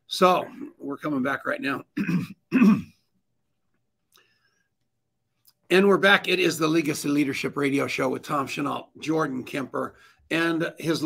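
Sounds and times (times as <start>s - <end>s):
man clearing his throat: 2.0s - 3.1s.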